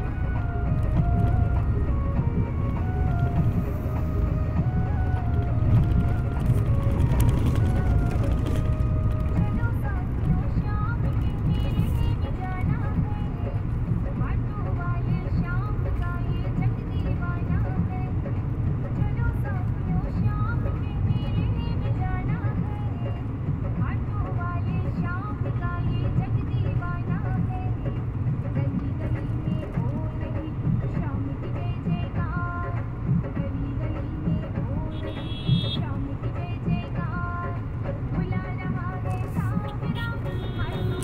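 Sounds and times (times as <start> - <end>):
car engine and road rumble: 0.0 - 41.0
music and singing: 0.0 - 41.0.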